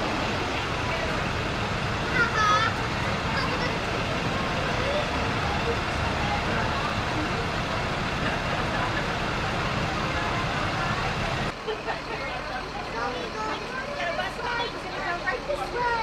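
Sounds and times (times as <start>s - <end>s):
bus engines rumbling: 0.0s - 16.0s.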